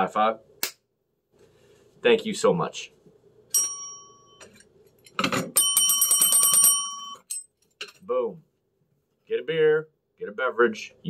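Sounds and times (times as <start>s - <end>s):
desk service bell dinging: 3.5s - 4.6s, 5.5s - 7.4s.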